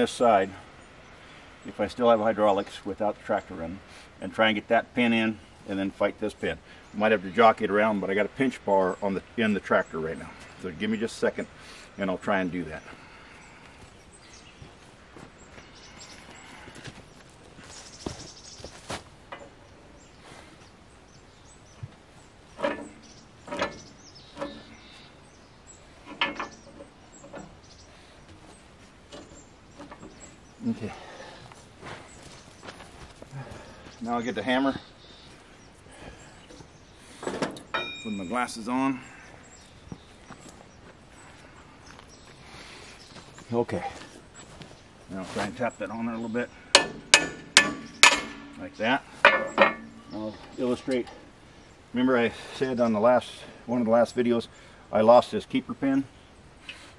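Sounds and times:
footsteps on dry pine straw: 14.6 - 19.1, 43.1 - 45.6
steel knocks and clanks: 22.6 - 24.8, 26.0 - 27.6, 37.2 - 38.4, 46.7 - 51.2.

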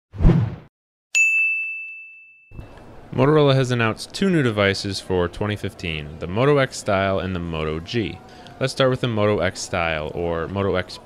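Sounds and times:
bright ding: 1.2 - 2.6.

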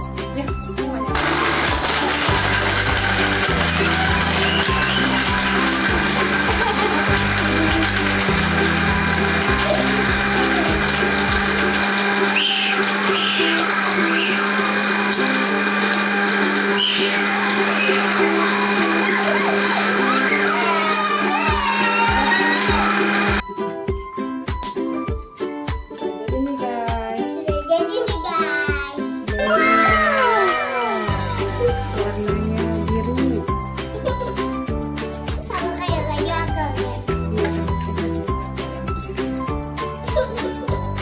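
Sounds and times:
blender motor whirring: 1.1 - 23.4, 29.4 - 33.1.

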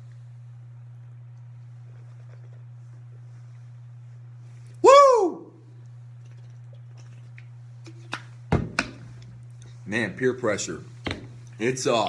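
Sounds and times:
steady low hum: 0.0 - 12.0
man whooping: 4.8 - 5.6.

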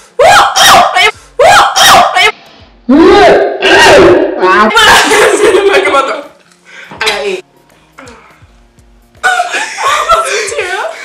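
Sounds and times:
women shouting: 0.2 - 5.1.

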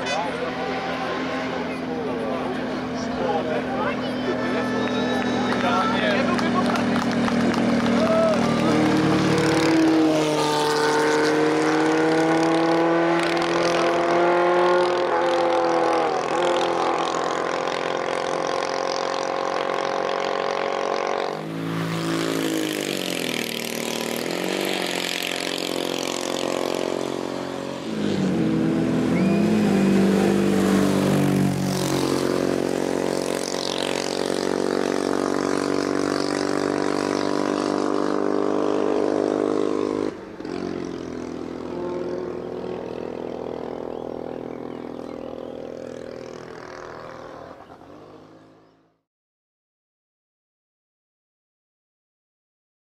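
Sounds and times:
racing car engine revving: 0.0 - 48.7.

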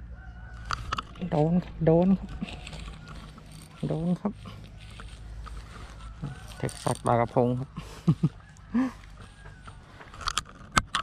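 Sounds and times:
fishing reel whirring: 2.4 - 4.2, 4.8 - 7.6.

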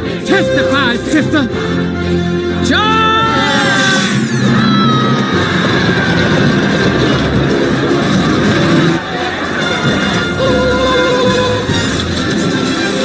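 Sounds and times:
film music: 0.0 - 13.0
mechanical rumble and clatter: 4.0 - 13.0.

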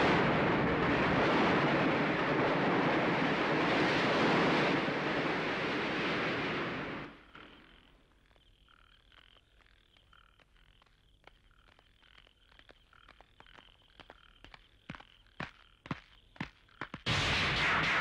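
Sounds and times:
frogs croaking: 7.1 - 17.0
loud steady rushing noise: 17.1 - 18.0.

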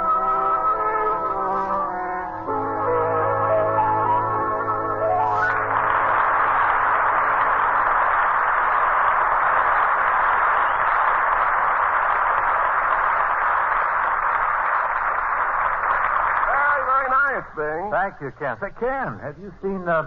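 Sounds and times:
audience applauding: 2.5 - 20.0.

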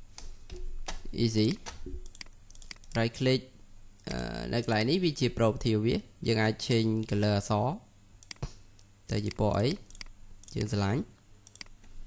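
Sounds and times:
computer mouse clicking: 0.1 - 3.0, 8.2 - 8.5, 9.2 - 10.6, 11.4 - 11.9.

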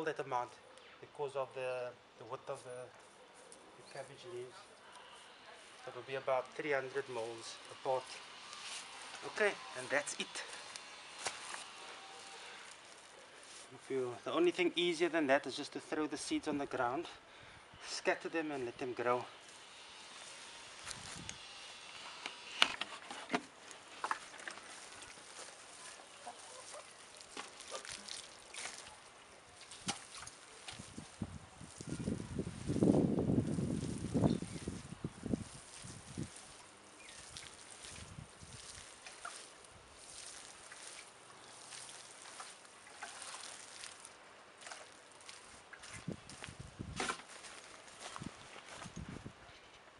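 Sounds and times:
water splashing onto soil: 24.0 - 49.0.

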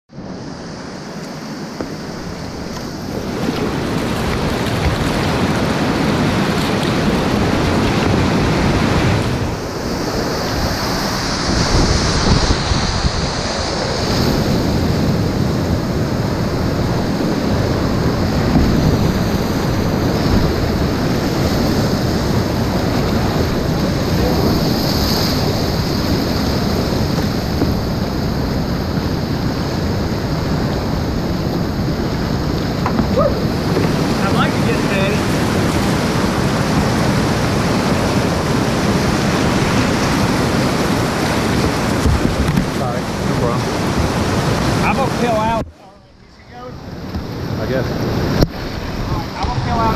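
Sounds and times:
whitewater rapids rushing: 0.2 - 45.6
water splashing: 1.1 - 45.8.

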